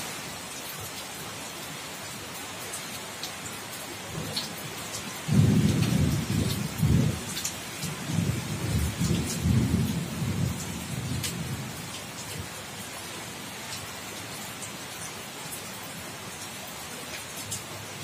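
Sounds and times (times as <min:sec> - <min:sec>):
rain on a corrugated roof: 0:00.0 - 0:18.0
thunder rumbling: 0:05.3 - 0:07.2.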